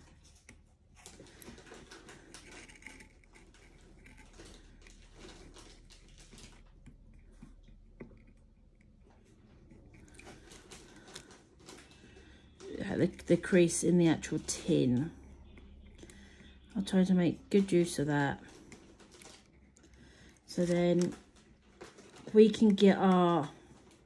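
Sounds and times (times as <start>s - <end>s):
paper rustling: 18.3s - 24.0s.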